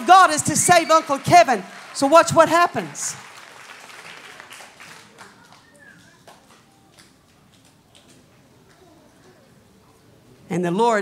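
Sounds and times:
scattered claps: 0.0s - 8.8s
audience murmur: 3.8s - 10.5s.

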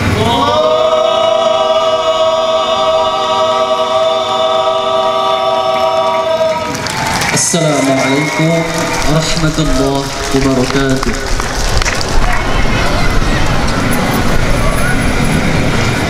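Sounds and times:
young men singing together: 0.1s - 6.7s
man's voice: 7.3s - 11.4s.

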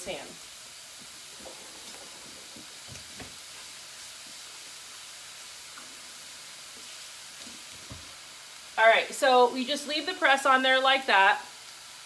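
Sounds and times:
chicken sizzling in a pan: 0.0s - 12.0s.

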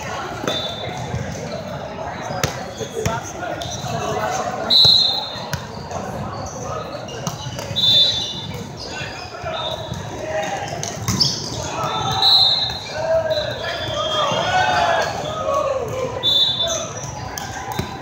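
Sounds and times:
murmur of many voices: 0.0s - 18.0s
volleyballs struck and bounced: 0.2s - 8.8s, 9.7s - 12.9s, 16.9s - 18.0s.

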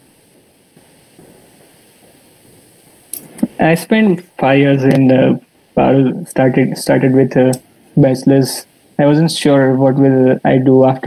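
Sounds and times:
audio line hiss: 0.0s - 11.0s.

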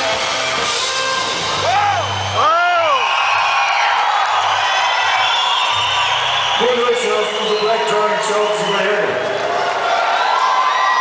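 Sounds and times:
crowd cheering: 0.0s - 11.0s.

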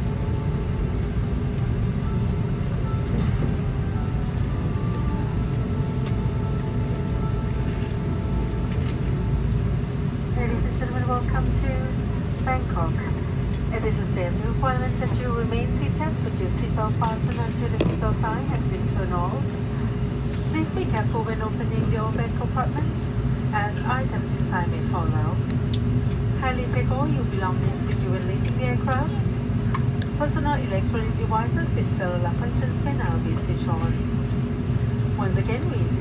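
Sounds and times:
aircraft cabin low rumble: 0.0s - 36.0s
cabin pa announcement: 10.3s - 19.7s, 20.5s - 25.5s, 26.2s - 34.0s.

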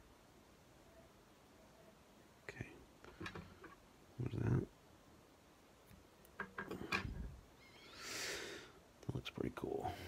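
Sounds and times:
light handling noise: 3.0s - 3.8s.

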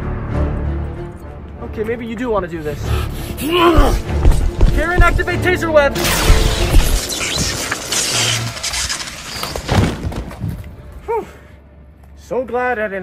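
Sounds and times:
action background music: 0.0s - 11.0s
electric zap and crackle: 6.0s - 10.2s.

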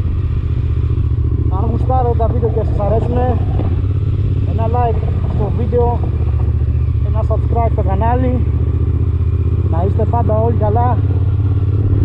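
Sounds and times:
motorcycle engine at low revs: 0.0s - 12.0s
man talking: 1.5s - 3.5s, 4.5s - 6.1s, 7.0s - 8.5s, 9.7s - 11.1s.

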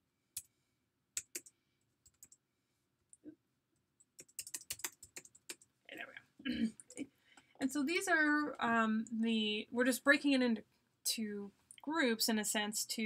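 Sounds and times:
computer keyboard typing: 1.2s - 2.4s, 4.1s - 5.7s.

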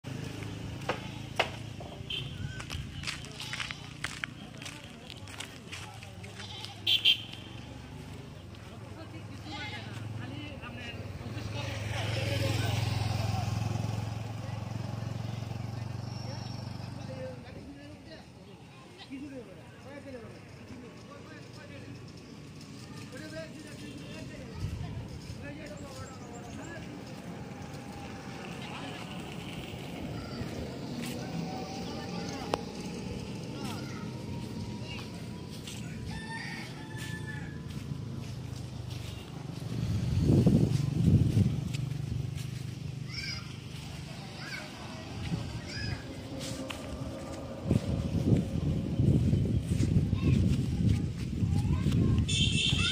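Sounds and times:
vehicle engine hum passing: 0.0s - 18.4s, 19.4s - 52.9s
faint voices: 0.0s - 52.9s
steady low rumble: 45.1s - 51.7s.

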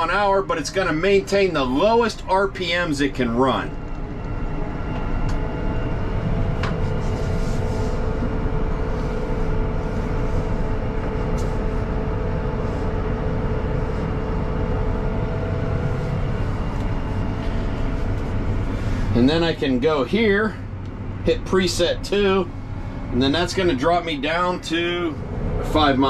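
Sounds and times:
steady engine whine: 0.0s - 26.0s
tractor engine low rumble: 0.0s - 26.0s.

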